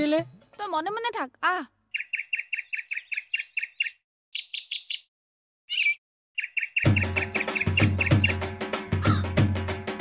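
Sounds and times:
small bird chirping: 0:01.8 - 0:05.1, 0:05.7 - 0:08.4
music with percussion: 0:06.8 - 0:10.0.

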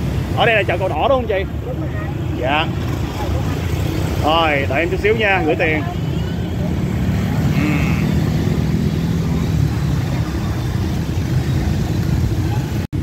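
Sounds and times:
motorbike and scooter traffic rumble: 0:00.0 - 0:13.0.

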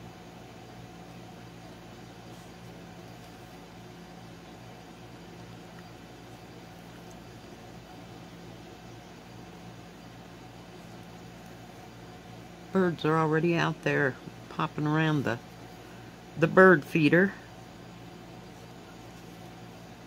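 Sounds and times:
low hum with faint hiss: 0:00.0 - 0:20.0.

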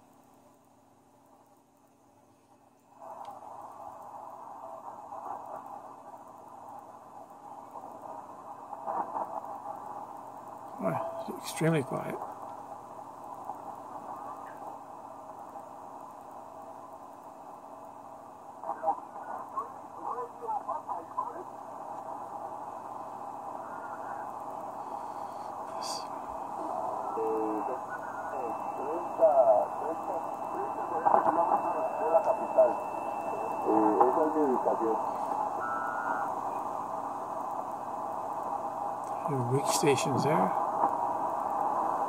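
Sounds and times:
radio static hiss: 0:00.0 - 0:42.0
weak radio voices: 0:03.0 - 0:42.0
steady radio whistle: 0:10.8 - 0:12.2, 0:22.9 - 0:42.0.

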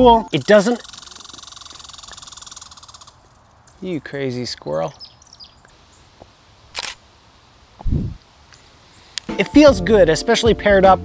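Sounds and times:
camera shutter click: 0:06.7 - 0:07.0
short low thump: 0:07.8 - 0:08.2.

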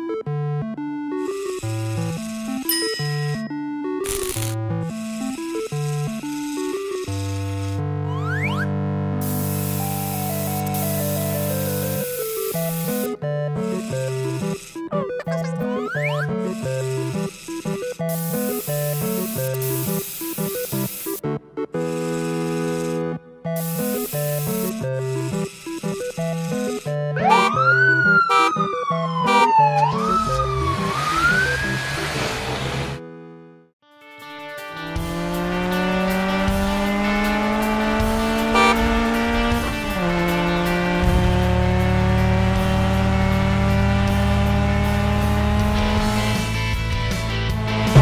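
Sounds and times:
cartoon music: 0:08.0 - 0:08.7, 0:14.8 - 0:16.7, 0:27.0 - 0:31.5, 0:38.5 - 0:39.0
police siren wailing: 0:27.2 - 0:32.2, 0:38.5 - 0:39.0
car engine accelerating: 0:30.0 - 0:33.4, 0:34.8 - 0:48.0.

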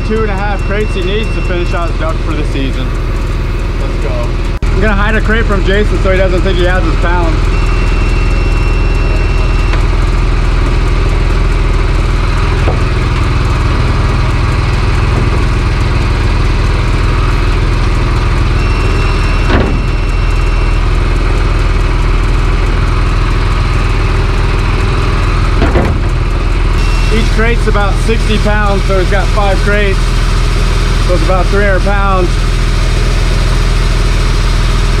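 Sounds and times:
air compressor running: 0:00.0 - 0:35.0.

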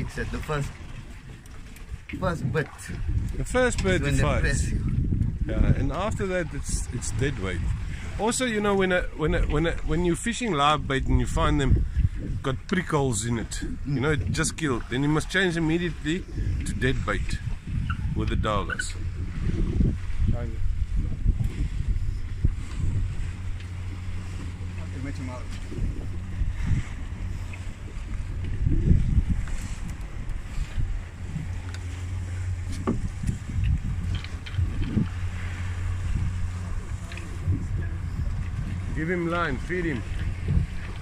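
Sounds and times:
boat engine idling: 0:00.0 - 0:41.0
wind and handling on microphone: 0:00.0 - 0:41.0.

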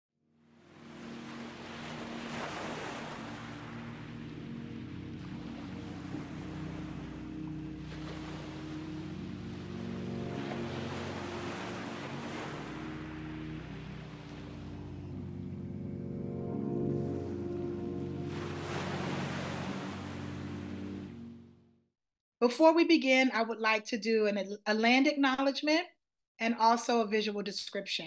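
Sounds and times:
low background music drone: 0:00.6 - 0:21.7
ocean surf washing onto beach: 0:00.7 - 0:15.3, 0:16.9 - 0:21.1.

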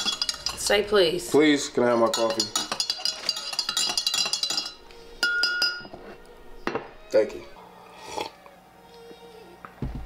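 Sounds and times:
spoon clinking in ceramic mug: 0:00.0 - 0:00.7, 0:02.0 - 0:06.0.

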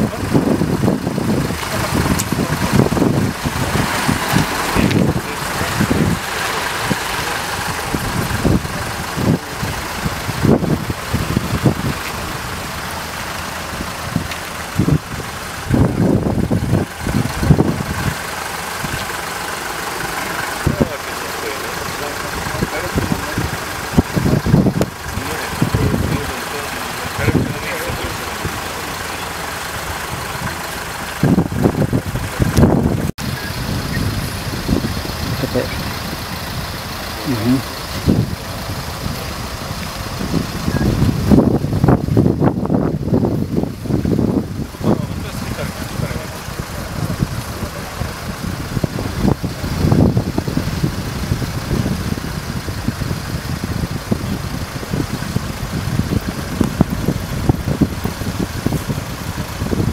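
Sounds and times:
indistinct voices: 0:00.0 - 0:59.9
vehicle engines idling: 0:00.0 - 0:59.9.

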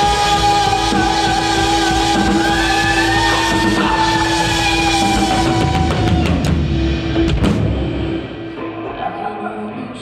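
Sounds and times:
live rock music: 0:00.0 - 0:10.0.

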